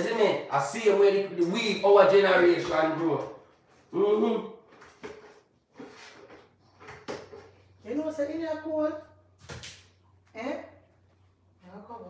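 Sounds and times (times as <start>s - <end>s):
knocks and scrapes on metal bowl: 4.8s - 7.7s.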